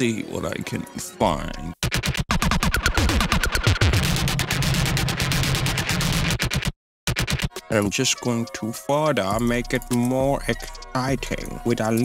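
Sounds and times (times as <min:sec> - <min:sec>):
glitchy stuttering bass: 0:01.9 - 0:07.5, 0:09.4 - 0:12.0.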